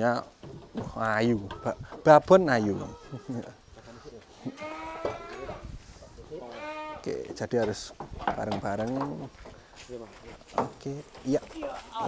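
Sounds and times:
goat bleating: 0:02.6 - 0:03.6, 0:04.4 - 0:05.6, 0:06.4 - 0:07.1.

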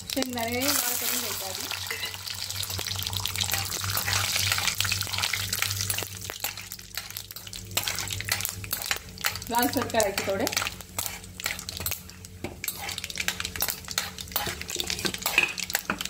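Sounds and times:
seeds sizzling in hot oil: 0:00.0 - 0:16.0
metal spoon scraping a pan: 0:01.9 - 0:02.2, 0:03.5 - 0:05.0, 0:05.8 - 0:16.0.

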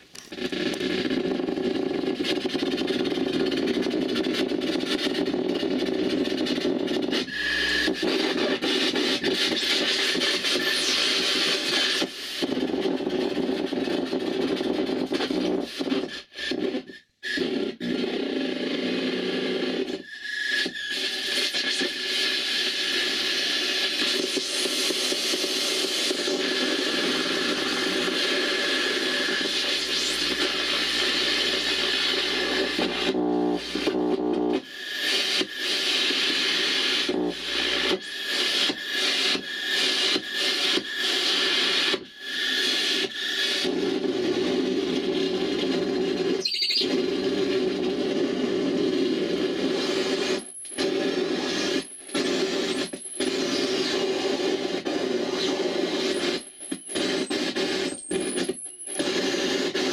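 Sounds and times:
grainy wall of static: 0:25.0 - 0:40.2
thin whistling tone: 0:46.4 - 0:46.9.

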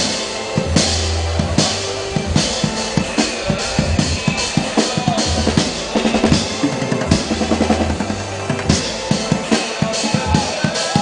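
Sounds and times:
low sustained bass note: 0:03.7 - 0:09.1.

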